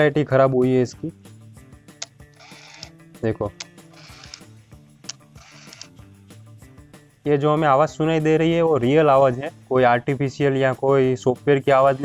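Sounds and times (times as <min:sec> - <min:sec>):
background music: 0:00.0 - 0:12.0
camera motor whirring: 0:02.4 - 0:02.9, 0:04.0 - 0:04.5, 0:05.4 - 0:05.9.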